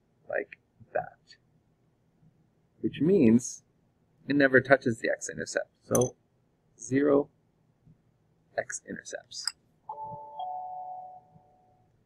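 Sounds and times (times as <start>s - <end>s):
two-note electronic chime: 9.9s - 11.8s.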